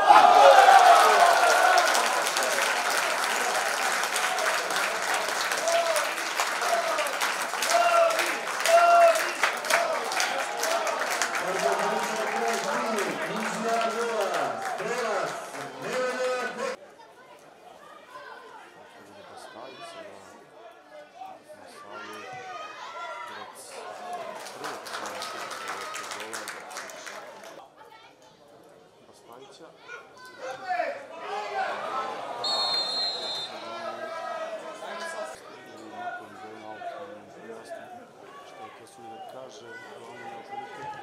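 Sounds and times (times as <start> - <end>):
footballers shouting: 0.0 - 16.8, 30.4 - 35.4
players and spectators calling out: 0.0 - 16.8, 29.9 - 41.0
open-air stadium ambience: 0.0 - 41.0.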